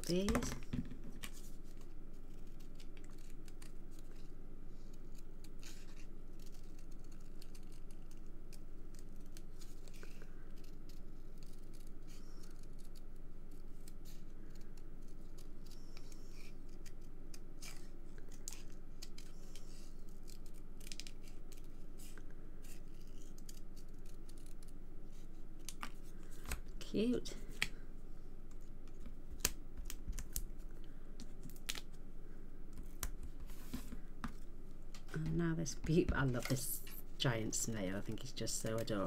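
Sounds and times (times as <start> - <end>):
scissors snipping paper: 1.3 - 4.3, 4.9 - 24.8.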